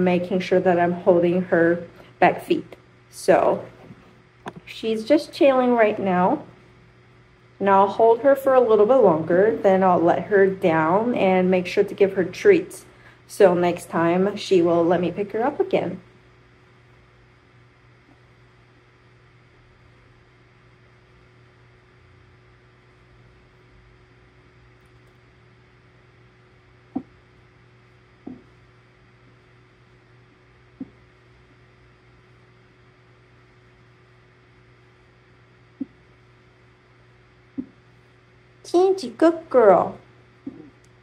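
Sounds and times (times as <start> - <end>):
steady low hum: 0.0 - 41.0.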